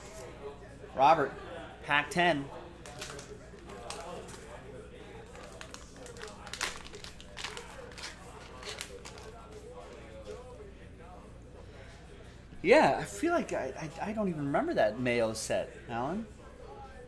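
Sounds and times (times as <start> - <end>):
foil wrapper crinkling and tearing: 5.2 - 9.5.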